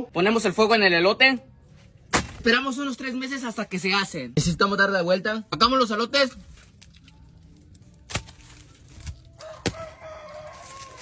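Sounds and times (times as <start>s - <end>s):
rooster crowing: 9.4s - 11.0s.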